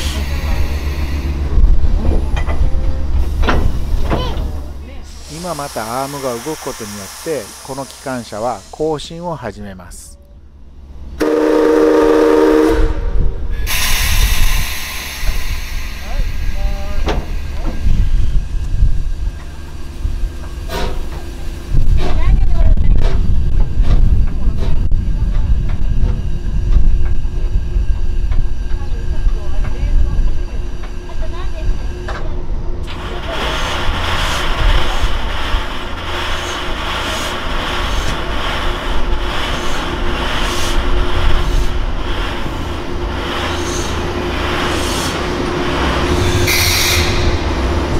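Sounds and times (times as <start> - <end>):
air hissing: 0.0 - 2.0, 5.0 - 9.2, 13.5 - 18.5, 33.0 - 47.9
locomotive rumbling: 0.0 - 47.9
locomotive whistle: 11.2 - 13.2, 46.4 - 47.5.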